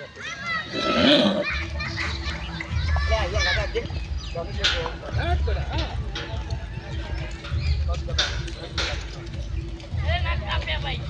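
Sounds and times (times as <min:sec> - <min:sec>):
children chattering and calling out: 0:00.0 - 0:05.6.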